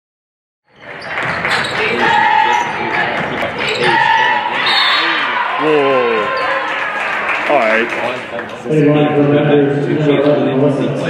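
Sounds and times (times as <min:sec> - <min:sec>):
shoe squeals: 0:00.7 - 0:05.4
voices: 0:01.1 - 0:11.0.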